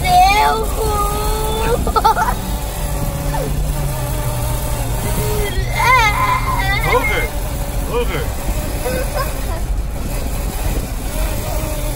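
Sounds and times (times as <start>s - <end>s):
road noise: 0.0s - 11.9s
wind rush through car window: 0.0s - 11.9s.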